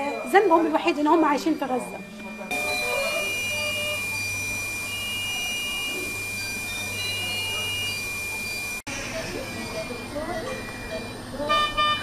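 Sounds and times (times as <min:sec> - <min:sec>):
low machine hum: 0:00.0 - 0:12.0
monitor beeping: 0:00.0 - 0:12.0
steady high electronic tone: 0:00.0 - 0:12.0.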